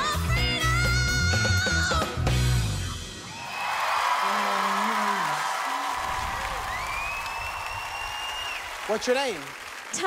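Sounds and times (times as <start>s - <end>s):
audience applauding and cheering: 3.1s - 10.0s
long shrill whistle: 6.6s - 8.7s.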